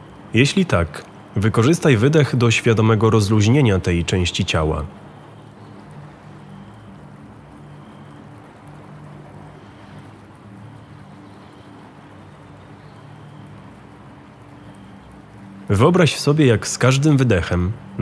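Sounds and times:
ambient meditation music: 0.0 - 18.0
soft hiss: 0.0 - 18.0.

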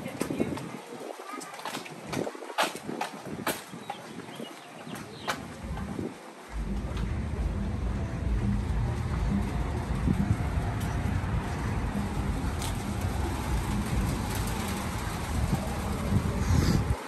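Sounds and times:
wind on microphone: 0.0 - 17.0.

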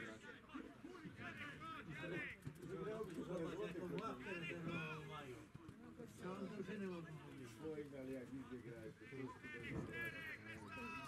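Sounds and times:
indistinct low voices talking: 0.0 - 11.0.

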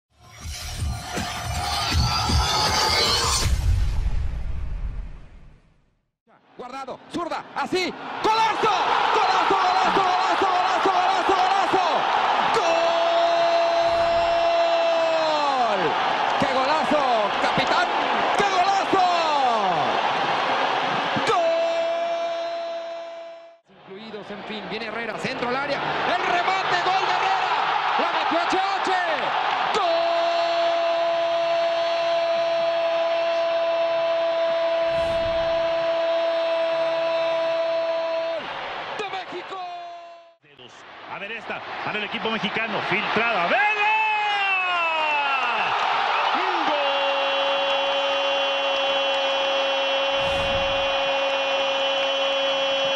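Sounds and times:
stadium crowd cheering: 6.3 - 52.9.

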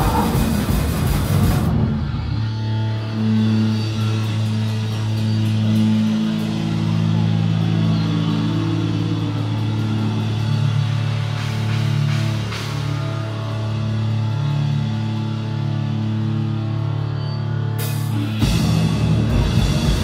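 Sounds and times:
rock band playing: 0.0 - 17.0, 17.8 - 20.0
amplifiers droning low notes: 0.0 - 20.0.

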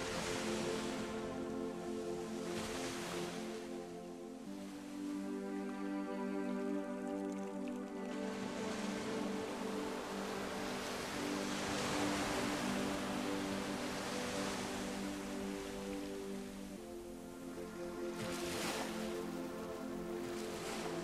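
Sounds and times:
sea surf wave: 0.0 - 21.0
soft background music: 0.0 - 21.0.

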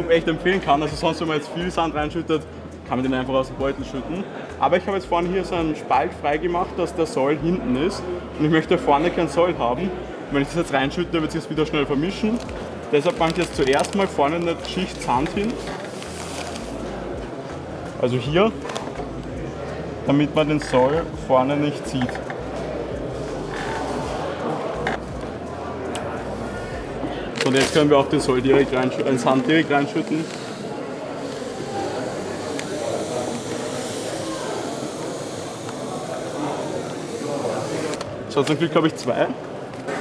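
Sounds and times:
busy hall background noise: 0.0 - 40.0.

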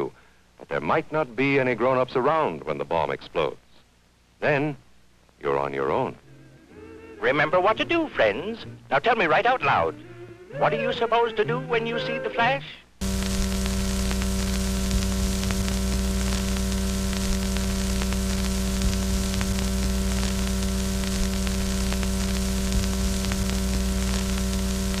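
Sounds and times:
television static hiss: 0.0 - 25.0
electrical hum: 13.0 - 25.0
faint crackle: 13.0 - 25.0.

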